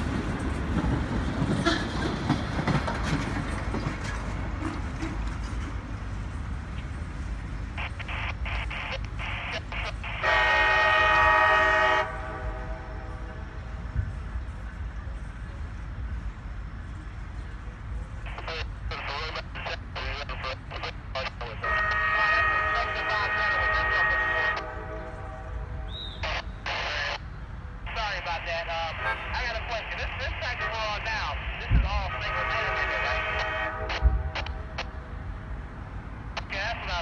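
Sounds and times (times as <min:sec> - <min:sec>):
low train rumble: 0:00.0 - 0:37.0
locomotive air horn blast: 0:10.2 - 0:13.6, 0:21.6 - 0:26.4, 0:29.0 - 0:29.3, 0:32.1 - 0:34.9.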